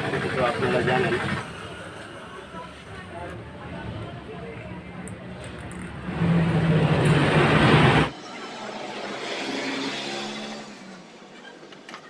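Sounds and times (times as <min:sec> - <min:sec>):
loud motor engine noise: 0:00.0 - 0:02.6, 0:05.4 - 0:12.0.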